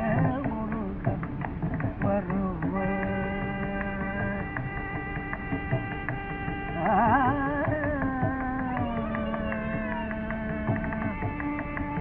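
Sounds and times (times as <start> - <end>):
hand drum strokes: 0.0 - 12.0
man singing a long note: 2.2 - 4.6.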